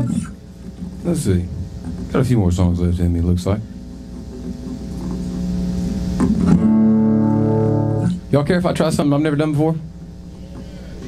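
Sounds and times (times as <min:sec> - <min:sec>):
acoustic guitar chords strummed: 0:03.9 - 0:09.0.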